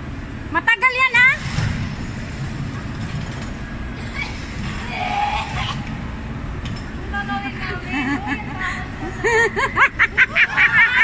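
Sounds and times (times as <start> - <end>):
amusement ride machinery rumbling: 0.0 - 11.0.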